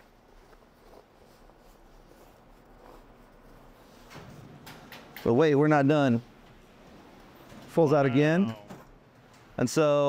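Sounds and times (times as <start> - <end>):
canvas cover rustling: 0.0 - 4.1.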